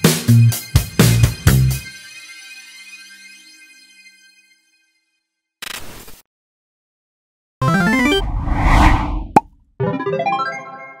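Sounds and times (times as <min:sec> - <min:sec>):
whoosh: 0:08.1 - 0:09.4.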